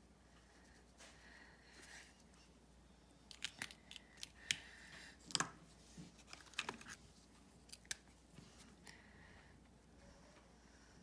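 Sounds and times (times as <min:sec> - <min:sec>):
plastic pens clicking and tapping: 0:03.3 - 0:04.7, 0:06.3 - 0:07.0.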